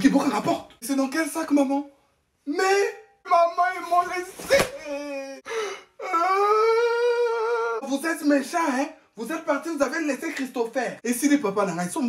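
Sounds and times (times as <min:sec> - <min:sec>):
man mock crying like a child: 0:04.5 - 0:07.8.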